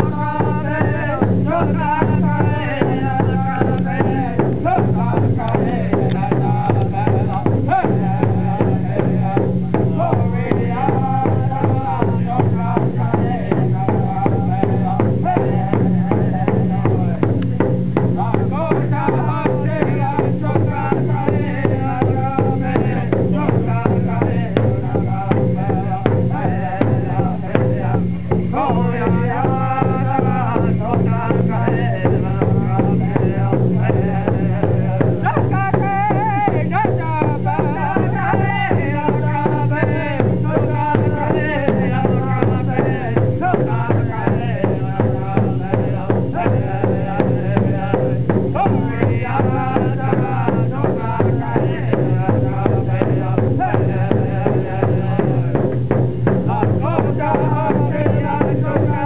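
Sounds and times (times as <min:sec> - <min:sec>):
group singing: 0:00.0 - 0:59.0
large hand drum beat: 0:00.0 - 0:59.0.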